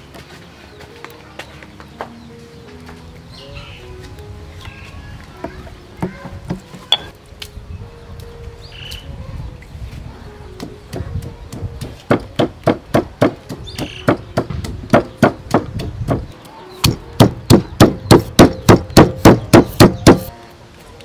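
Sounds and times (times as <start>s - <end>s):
pestle pounding in stone mortar: 10.6s - 20.3s.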